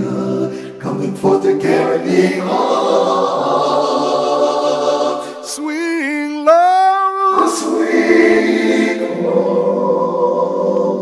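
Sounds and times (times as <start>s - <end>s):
wordless choir singing chord: 0.0s - 6.0s, 7.3s - 11.0s.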